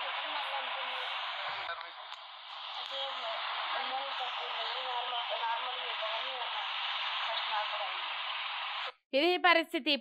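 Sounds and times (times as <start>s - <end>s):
speech from phone speaker: 0.0s - 8.0s
steady hiss: 0.0s - 9.0s.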